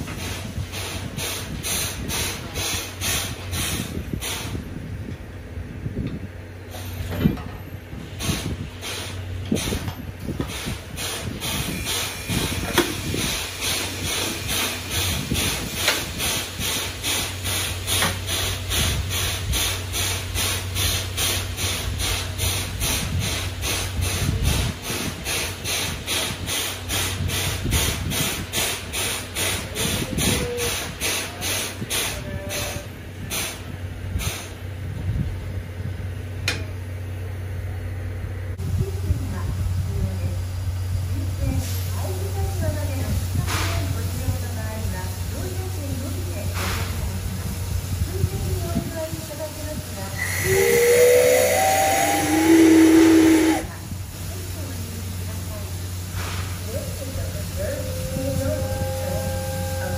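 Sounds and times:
steam air pump hissing puffs: 0.0 - 4.8, 7.9 - 34.6, 41.4 - 59.9
steam whistle blast: 50.2 - 53.7, 57.7 - 59.9.

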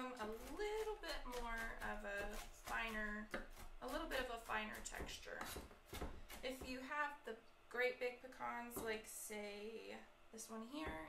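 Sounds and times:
woman talking: 0.0 - 5.6, 6.4 - 11.0
knife chopping on wooden board: 0.2 - 6.8.

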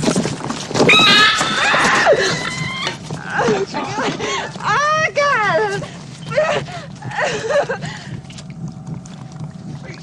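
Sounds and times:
people screaming and shouting: 0.9 - 3.6.

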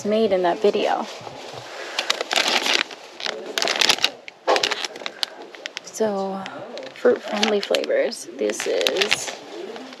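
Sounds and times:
plastic bag crinkling: 0.2 - 10.0.

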